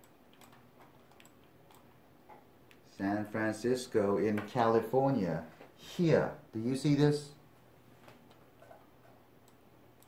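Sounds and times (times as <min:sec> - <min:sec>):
computer mouse clicks: 0:00.0 - 0:01.9.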